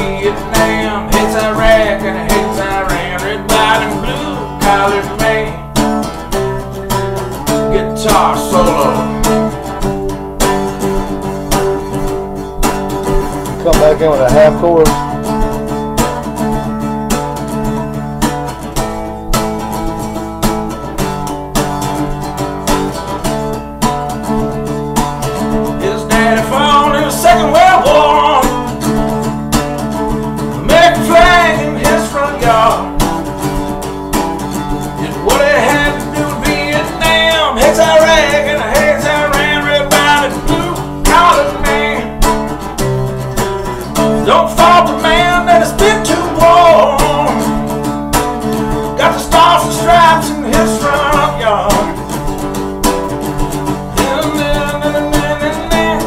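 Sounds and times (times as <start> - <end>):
wordless singing: 0.0 - 6.6, 7.2 - 12.4, 25.5 - 43.0, 43.9 - 47.9, 48.6 - 52.4, 53.7 - 56.0
acoustic guitar strumming: 0.0 - 56.0.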